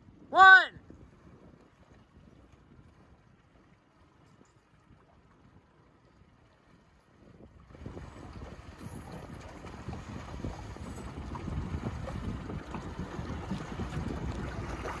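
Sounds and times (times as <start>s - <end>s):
wind buffeting microphone: 0.0s - 15.0s
water splashing and slapping: 1.0s - 15.0s.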